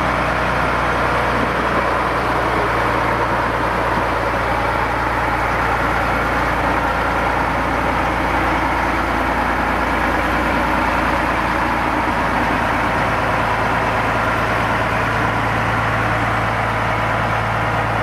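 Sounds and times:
diesel locomotive engine running: 0.0s - 18.0s.

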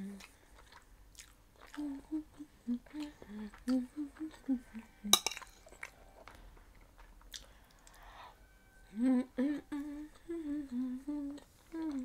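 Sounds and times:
woman humming: 0.0s - 0.2s, 1.8s - 5.3s, 8.8s - 12.0s.

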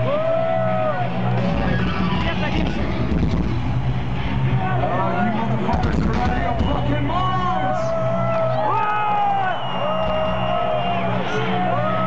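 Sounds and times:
crowd shouting: 0.0s - 5.8s, 7.1s - 12.0s
distorted live metal band: 0.0s - 9.3s.

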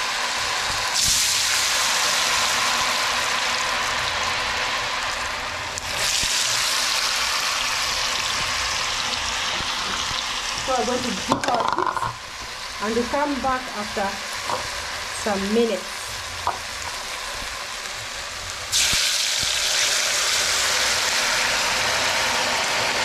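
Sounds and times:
chips sizzling in hot oil: 0.0s - 23.0s.

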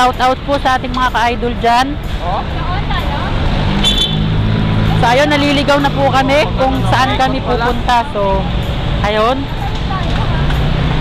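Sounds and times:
city street traffic: 0.0s - 11.0s
vehicle engine running: 0.0s - 11.0s.

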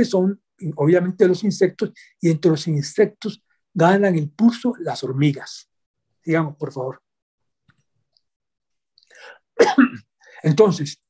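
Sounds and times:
man coughing: 9.6s - 10.2s.

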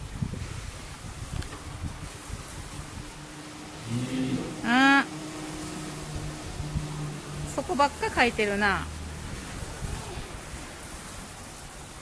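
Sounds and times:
water running hiss: 0.0s - 12.0s.

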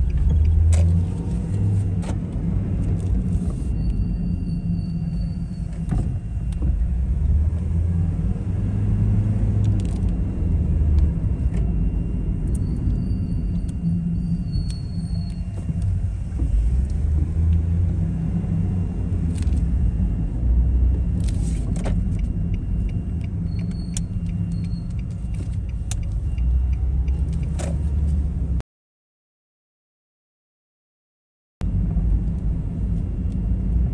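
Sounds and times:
motor vehicles rumbling: 0.0s - 28.6s, 31.6s - 33.9s.

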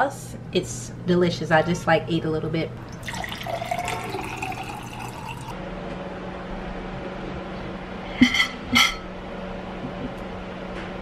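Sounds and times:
steady low hum: 0.0s - 11.0s
water pouring into a glass: 2.8s - 5.6s.

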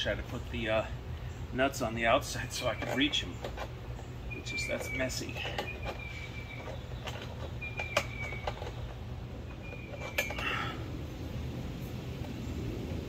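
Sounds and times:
low steady rumble: 0.0s - 13.0s
metal hardware clicking: 2.6s - 10.6s.

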